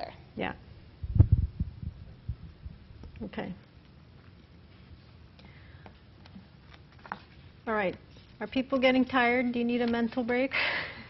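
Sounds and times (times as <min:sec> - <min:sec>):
microphone handling thumps: 0:01.0 - 0:02.8.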